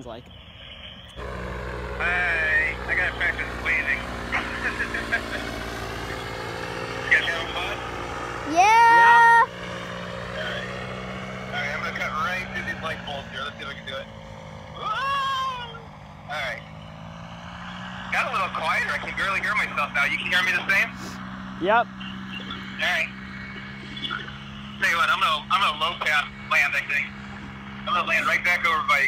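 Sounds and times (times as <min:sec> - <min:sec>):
people talking: 0:00.0 - 0:00.3, 0:02.0 - 0:07.9, 0:08.5 - 0:09.5, 0:10.3 - 0:10.7, 0:11.5 - 0:14.1, 0:14.8 - 0:16.6, 0:18.1 - 0:27.1, 0:27.8 - 0:29.0
paramotor engine droning: 0:00.0 - 0:29.0
loud rising voice calls: 0:08.4 - 0:09.6.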